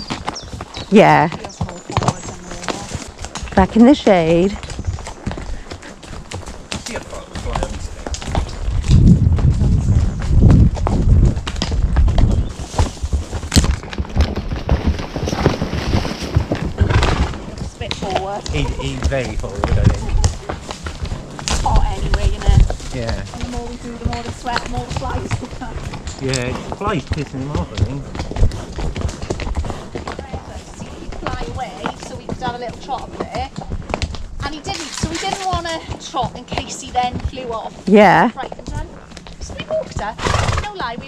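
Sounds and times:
hooves clopping on dirt track: 0:00.0 - 0:41.0
people talking indistinctly: 0:00.9 - 0:04.6, 0:17.5 - 0:20.6, 0:21.6 - 0:28.1, 0:30.2 - 0:33.6, 0:34.4 - 0:41.0
low rumble on microphone: 0:07.4 - 0:13.8, 0:14.4 - 0:31.3.

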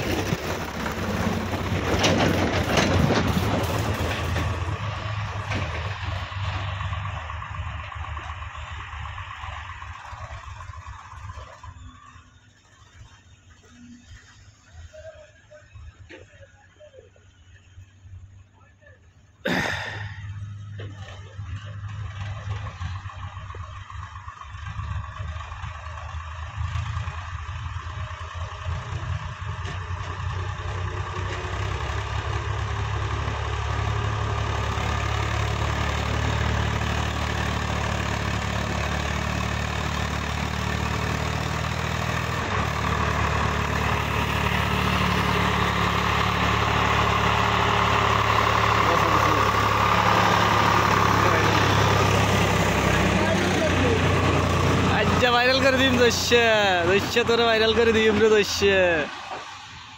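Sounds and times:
diesel tractor engine running: 0:00.0 - 0:59.9.

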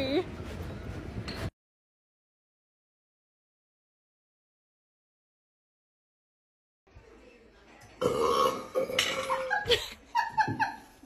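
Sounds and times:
person burping: 0:08.0 - 0:09.5.

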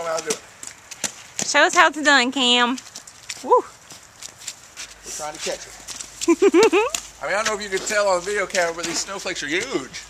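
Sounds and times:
footsteps crunching on snow: 0:00.0 - 0:10.0.

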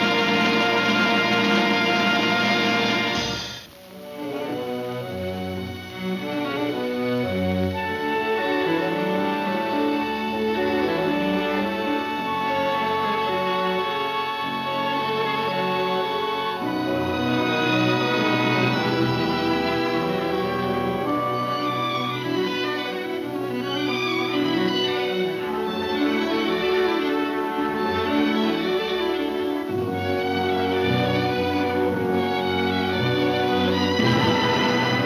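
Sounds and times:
orchestral film music: 0:00.0 - 0:35.0.

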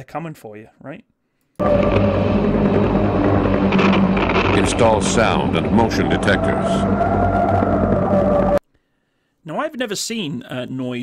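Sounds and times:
eerie drone music: 0:01.6 - 0:08.6.

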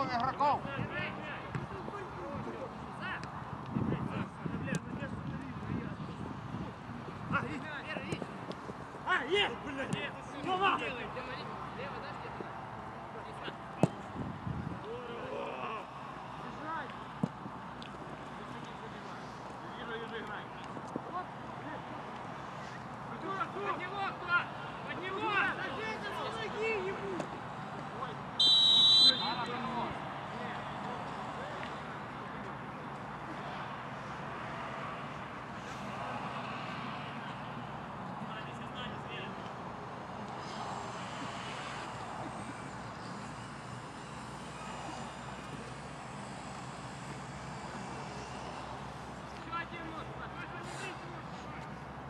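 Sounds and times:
footballers shouting: 0:23.2 - 0:31.8
referee's whistle blast: 0:28.4 - 0:29.6.

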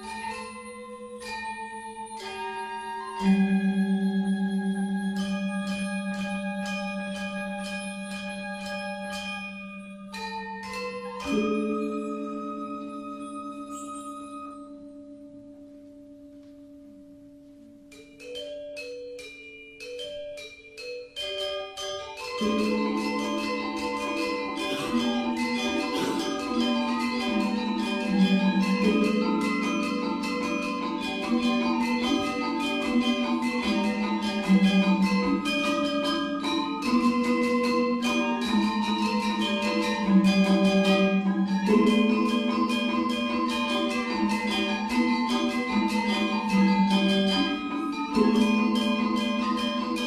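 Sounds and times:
bronze percussion strikes: 0:00.0 - 0:50.0
metallophones and gongs struck: 0:05.2 - 0:18.4, 0:21.8 - 0:50.0.

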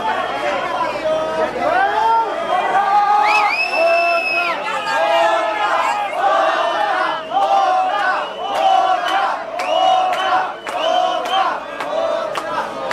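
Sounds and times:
crowd chanting in unison: 0:00.0 - 0:12.9
hands clapping: 0:06.8 - 0:12.9.

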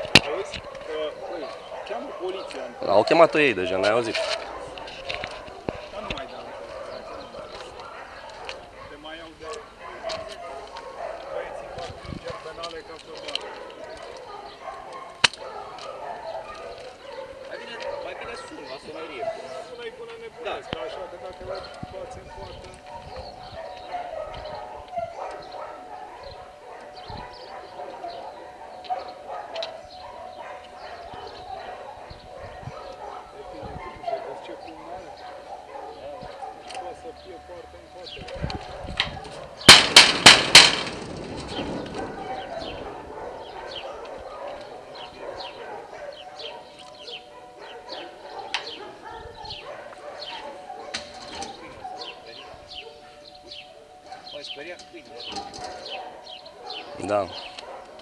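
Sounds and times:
distant voices: 0:00.0 - 0:58.0
loud bangs on metal gate: 0:39.6 - 0:42.8.

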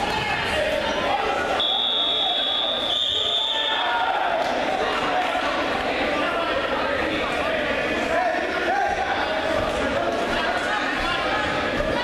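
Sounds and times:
gym chatter: 0:00.0 - 0:12.0.

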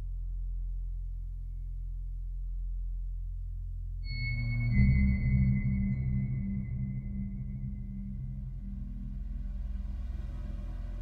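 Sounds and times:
low pulsing drone: 0:00.0 - 0:11.0
high sonar-like synth tone: 0:04.0 - 0:11.0.

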